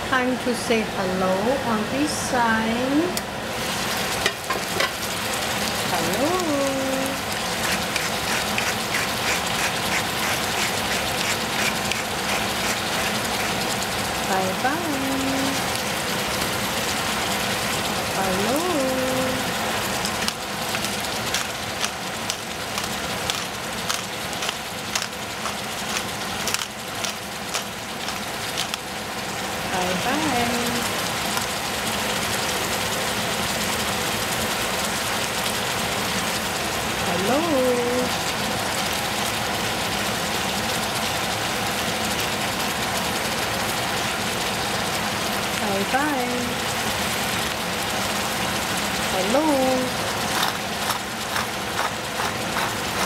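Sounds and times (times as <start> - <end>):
squash sizzling in a saucepan: 0.1 - 53.0.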